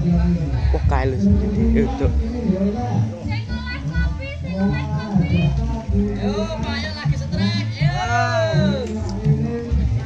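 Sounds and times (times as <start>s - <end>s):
background music: 0.0s - 10.0s
people talking at once: 0.0s - 10.0s.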